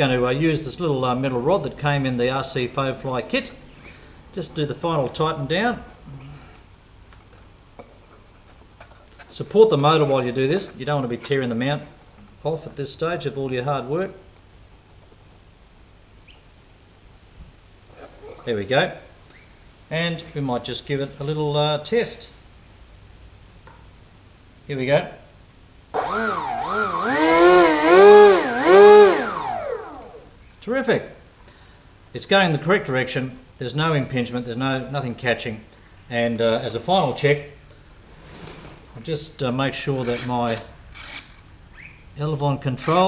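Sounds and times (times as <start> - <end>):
steady high whine: 25.9 - 30.5
electric motor whine revving: 26.0 - 30.3.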